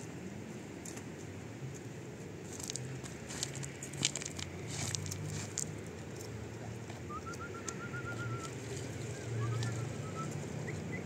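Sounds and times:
whistled warbling trill: 7.1 - 8.5.

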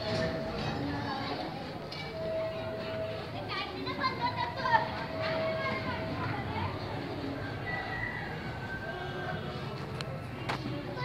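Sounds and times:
people and children talking: 0.0 - 11.0.

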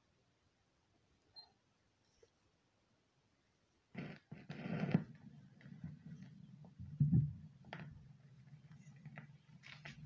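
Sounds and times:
record groove hum: 3.9 - 10.0.

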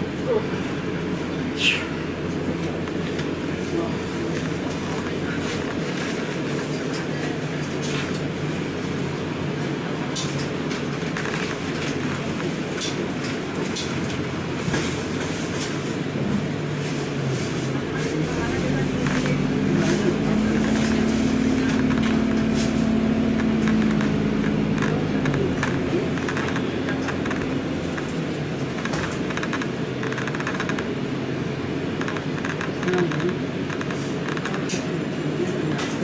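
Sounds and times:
bus engine running: 0.0 - 36.0
bus cabin rattling: 0.1 - 36.0.

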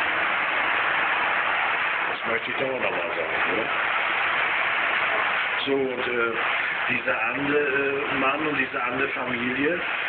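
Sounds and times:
steady static hiss: 0.0 - 10.0.

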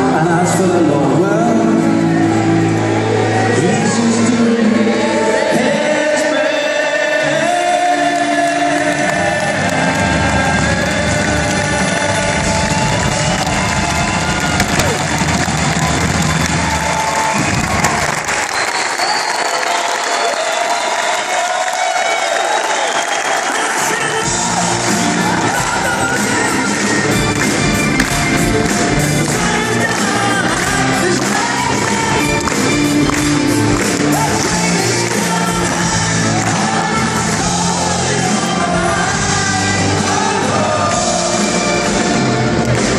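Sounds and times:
person singing: 0.0 - 13.6, 23.4 - 42.9
crowd cheering: 7.4 - 39.2
rock band playing live: 23.8 - 42.9.

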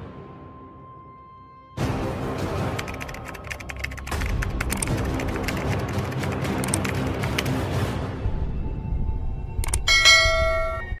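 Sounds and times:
quick clicks: 2.7 - 7.5
bell-like chime: 9.8 - 11.0.

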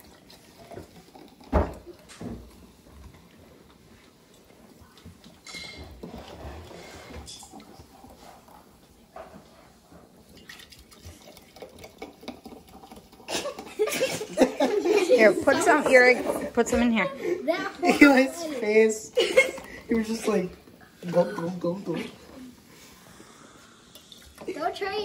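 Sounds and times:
soda pouring into glass jars: 0.0 - 9.1, 9.7 - 16.3, 17.9 - 25.0.

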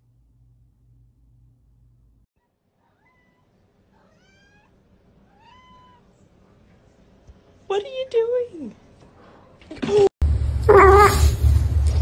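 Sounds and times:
cat meowing faintly: 2.8 - 6.2.

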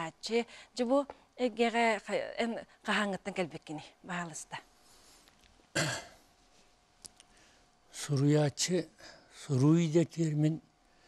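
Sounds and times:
man clearing throat: 5.7 - 6.2.

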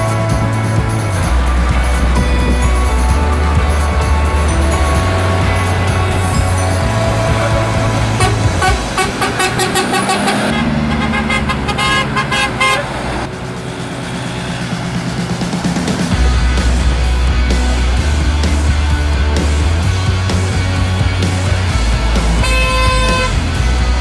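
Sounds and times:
background music: 0.0 - 24.0
road traffic: 0.0 - 24.0
car horns tooting: 1.9 - 13.3, 22.4 - 23.6.

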